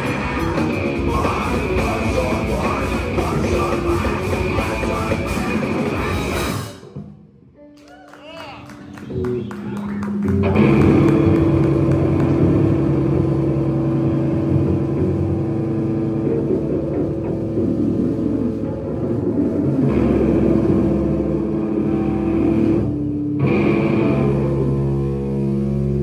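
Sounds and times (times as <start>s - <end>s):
rock band playing loud: 0.0s - 26.0s.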